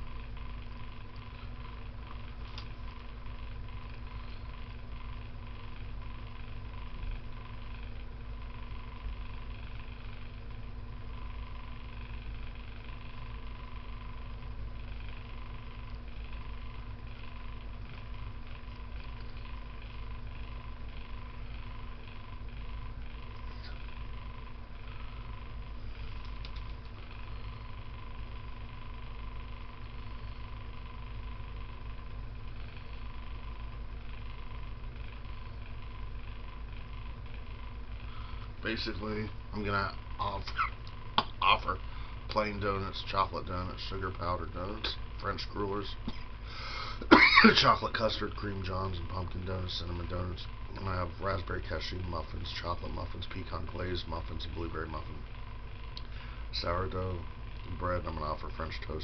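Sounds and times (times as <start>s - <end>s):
box fan humming: 0.0s - 59.0s.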